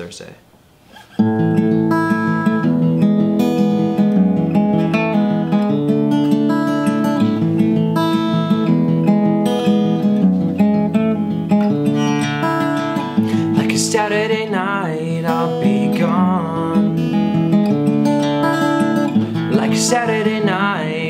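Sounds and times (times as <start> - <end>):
acoustic guitar strumming: 0.8 - 21.0
person singing: 13.1 - 17.4, 19.3 - 21.0.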